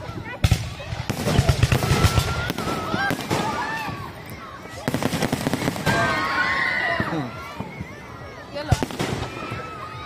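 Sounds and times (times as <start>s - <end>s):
fireworks bangs and crackles: 0.0s - 10.0s.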